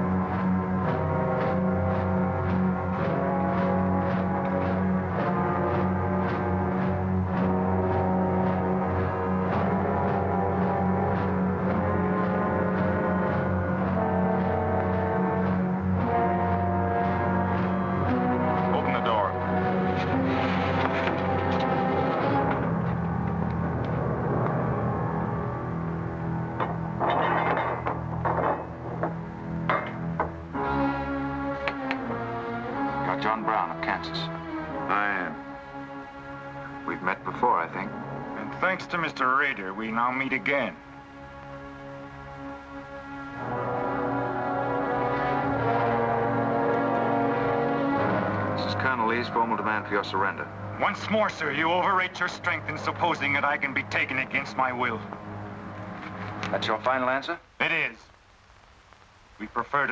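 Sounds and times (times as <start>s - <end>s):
tense orchestral music: 0.0s - 56.8s.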